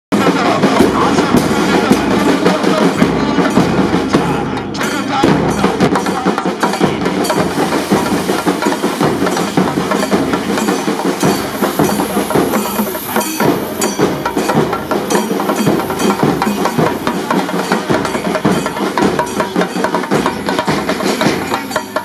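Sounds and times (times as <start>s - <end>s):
drum roll with sticks: 0.2s - 22.0s.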